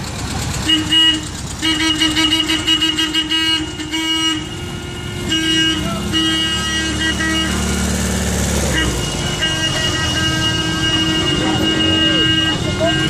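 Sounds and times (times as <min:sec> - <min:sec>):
old cars driving past: 0:00.0 - 0:13.0
car horns tooting: 0:00.6 - 0:13.0
car engine passing: 0:05.1 - 0:13.0.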